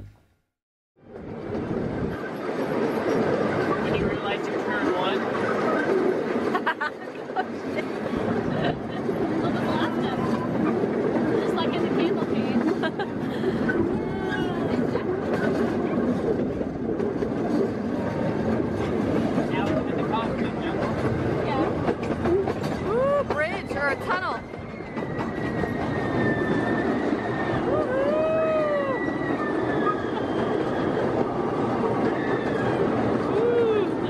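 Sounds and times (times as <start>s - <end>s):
ride train rumbling on track: 1.0s - 34.0s
wheel squeal: 22.3s - 27.9s, 28.8s - 33.4s.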